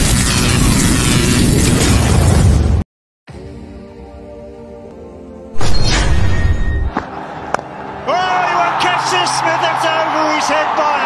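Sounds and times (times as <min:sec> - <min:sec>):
commentator speaking: 0:08.1 - 0:11.0.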